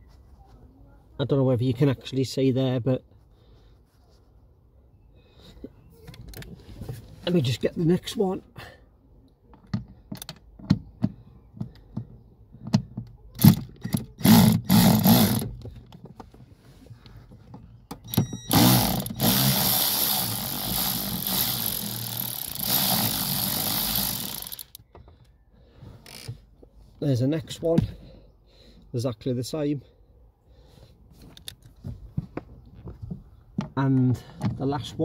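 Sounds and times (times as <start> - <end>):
cordless ratchet running: 13.4 - 15.5, 18.2 - 24.8.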